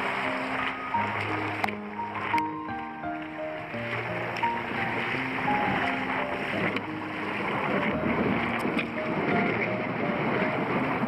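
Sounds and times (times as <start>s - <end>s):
water splashing off paddle: 0.0s - 11.0s
wind on microphone: 0.0s - 11.0s.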